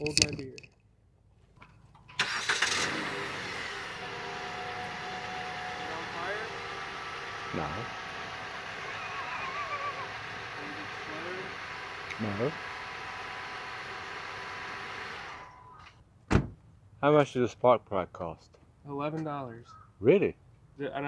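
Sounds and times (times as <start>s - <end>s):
car engine starting and idling: 2.0s - 15.9s.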